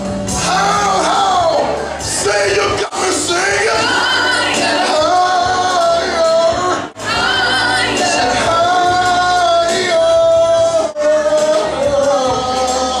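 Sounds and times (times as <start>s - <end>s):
backing music: 0.0s - 13.0s
man singing into a microphone: 0.4s - 13.0s.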